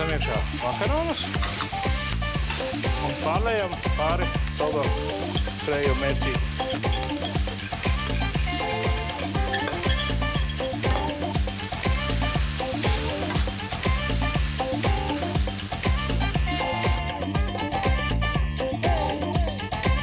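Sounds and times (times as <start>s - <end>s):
food sizzling in a frying pan: 0.0s - 17.1s
background music with a steady beat: 0.0s - 20.0s
wooden spatula stirring: 6.7s - 11.2s.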